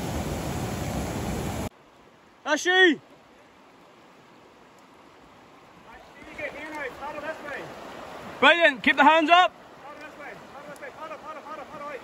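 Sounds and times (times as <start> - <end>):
river water over rapids: 0.0 - 12.0.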